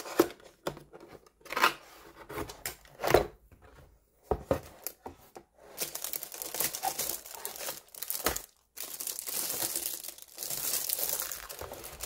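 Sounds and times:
plastic wrapping crinkling: 5.7s - 12.0s.

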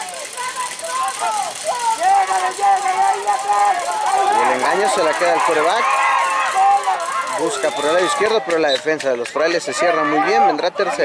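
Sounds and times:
distant shouted voices: 0.0s - 11.0s.

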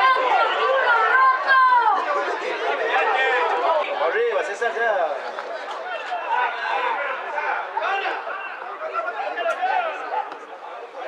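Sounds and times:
crowd chatter and calling out: 0.0s - 11.0s.

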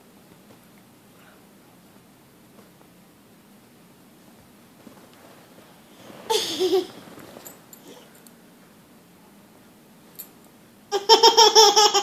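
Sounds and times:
faint rustling: 4.8s - 8.3s.

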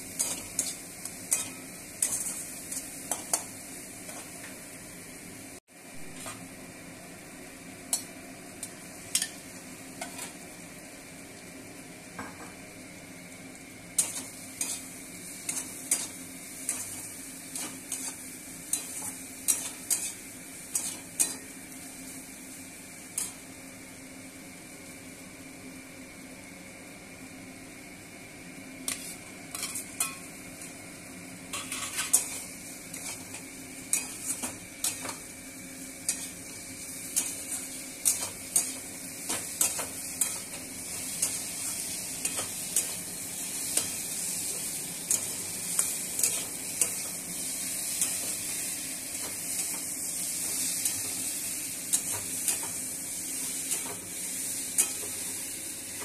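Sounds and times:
potatoes sizzling in oil: 0.0s - 26.2s, 28.5s - 56.0s.

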